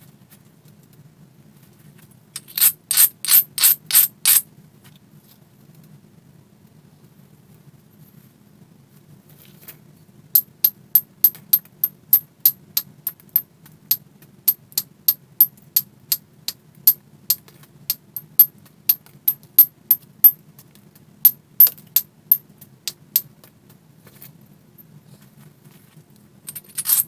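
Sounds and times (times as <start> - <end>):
knapping tool tapping stone: 2.4 - 4.4.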